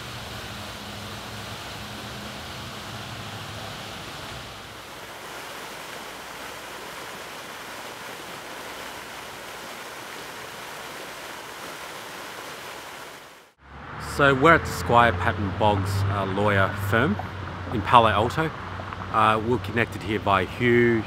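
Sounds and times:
fountain water splashing: 0.0 - 13.6.

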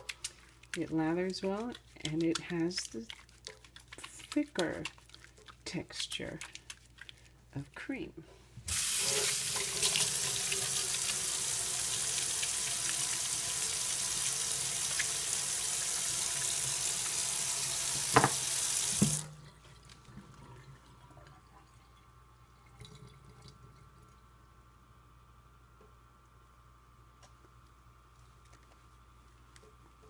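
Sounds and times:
faint wet hand sounds: 0.0 - 7.8
faucet water running over hands: 8.7 - 19.4.

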